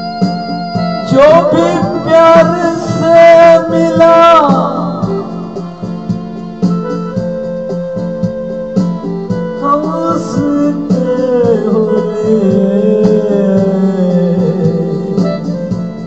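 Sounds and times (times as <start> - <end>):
electronic keyboard music: 0.0 - 16.0
programmed drum beat: 0.0 - 16.0.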